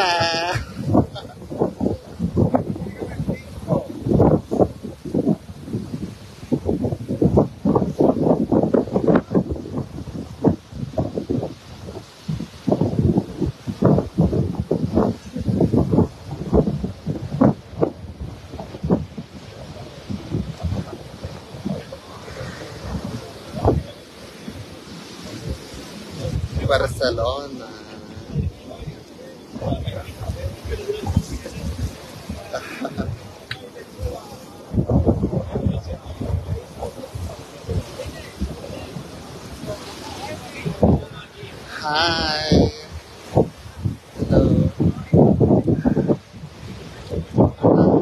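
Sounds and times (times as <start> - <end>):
wind buffeting microphone: 0.0 - 48.0.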